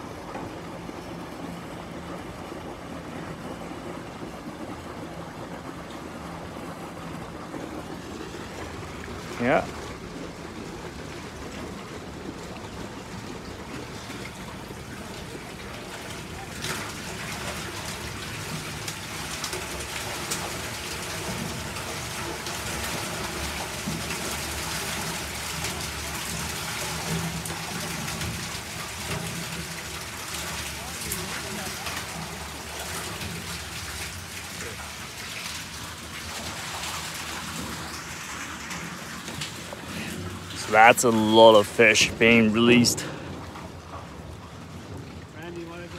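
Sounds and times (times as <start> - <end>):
water splashing and draining: 0.0 - 45.9.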